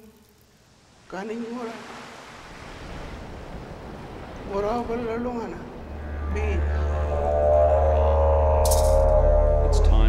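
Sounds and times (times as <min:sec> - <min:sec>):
didgeridoo drone: 0:05.8 - 0:10.0.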